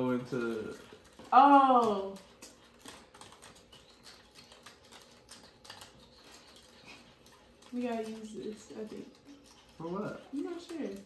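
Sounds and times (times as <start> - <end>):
plastic packets clicking and crinkling: 0.0 - 11.0.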